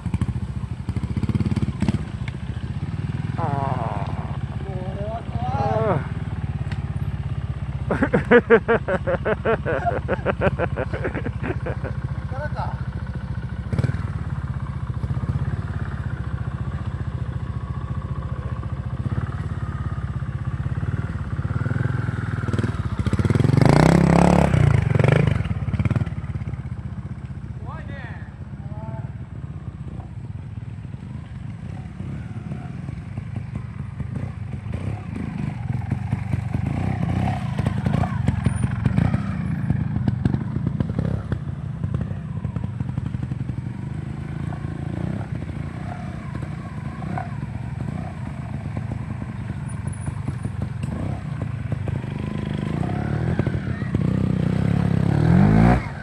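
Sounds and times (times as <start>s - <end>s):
motorcycle engines revving: 0.0s - 56.0s.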